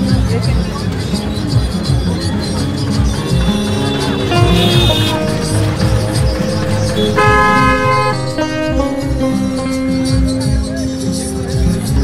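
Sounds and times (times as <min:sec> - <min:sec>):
music with steady beat: 0:00.0 - 0:12.0
held horn-like tone: 0:03.3 - 0:09.7.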